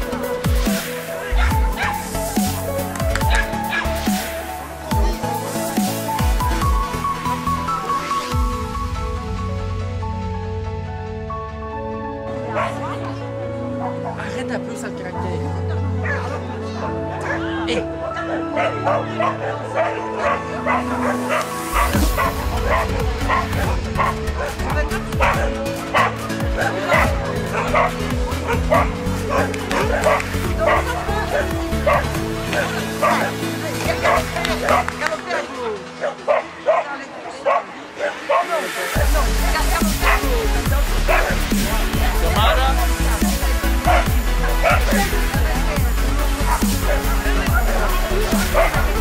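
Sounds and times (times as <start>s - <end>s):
background music: 0.0s - 49.0s
dog barking: 1.2s - 2.0s, 3.3s - 3.9s, 12.5s - 13.0s, 16.0s - 38.7s, 40.0s - 40.4s, 41.1s - 41.4s, 43.1s - 45.1s, 46.4s - 49.0s
heavy bass beat: 21.5s - 34.7s, 39.0s - 49.0s.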